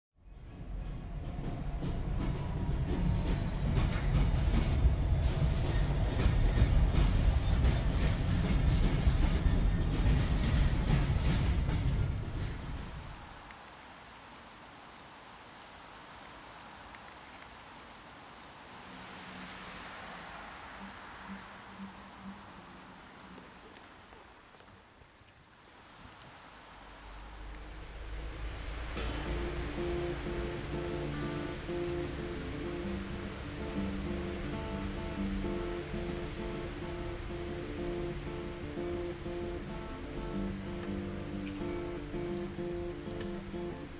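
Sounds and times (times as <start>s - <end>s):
deep rumble with hiss and clatter: 1.3s - 13.3s.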